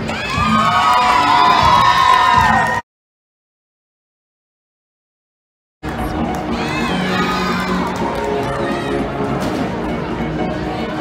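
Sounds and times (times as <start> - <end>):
crowd cheering and shouting: 0.0 - 2.8, 5.9 - 11.0
background music: 5.8 - 11.0.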